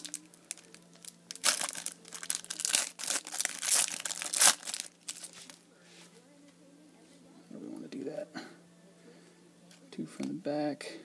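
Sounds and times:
plastic wrapper tearing and crinkling: 0.0s - 5.6s.

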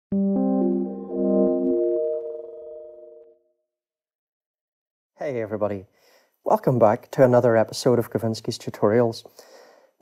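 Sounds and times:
sustained music chord: 0.1s - 3.3s.

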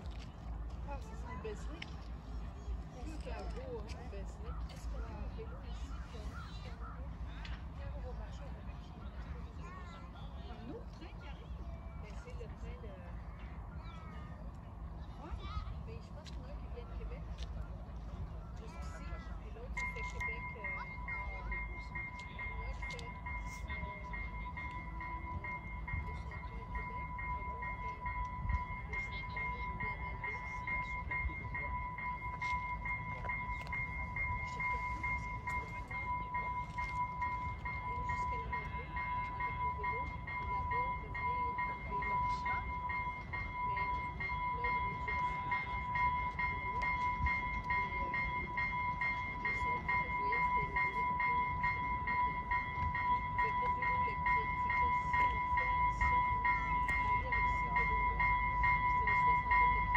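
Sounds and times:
railcar rumble: 0.0s - 59.9s
steady high warning tone: 0.0s - 59.9s.

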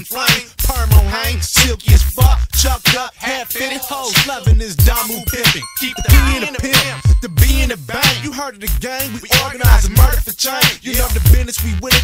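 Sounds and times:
rapping over a beat: 0.0s - 12.0s
deep kick drum: 9.6s - 10.2s.

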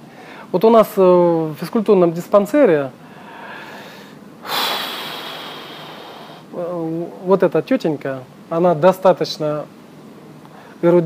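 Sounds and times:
person breathing out: 3.1s - 6.5s.

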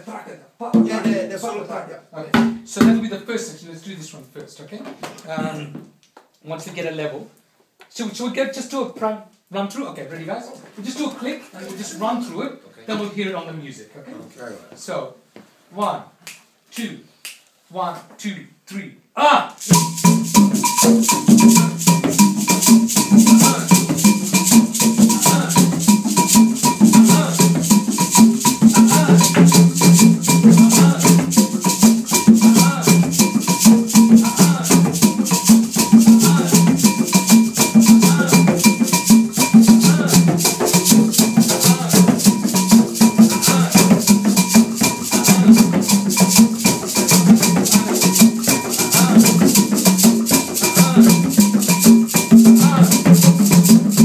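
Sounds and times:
hand drums playing fast rhythm: 0.7s - 1.5s, 2.3s - 3.1s, 19.6s - 54.0s
shakers rattling: 19.6s - 54.0s.

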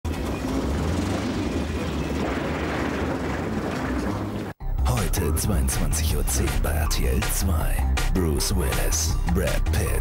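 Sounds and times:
vehicle engine rumbling: 0.0s - 4.6s.

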